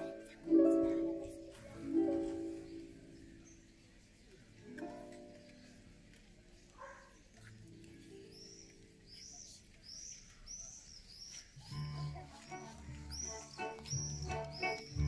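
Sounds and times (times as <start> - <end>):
high bird chirps: 8.3 - 11.9, 13.1 - 15.0
orchestral music: 11.8 - 15.0.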